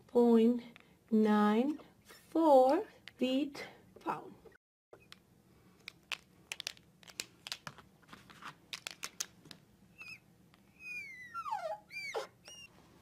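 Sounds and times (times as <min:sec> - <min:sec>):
marker squeaking on glass: 0:10.0 - 0:12.7.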